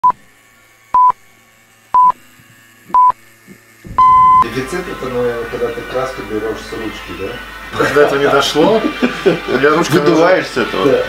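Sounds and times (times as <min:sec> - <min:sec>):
high countdown beeps: 0:04.0 - 0:04.4.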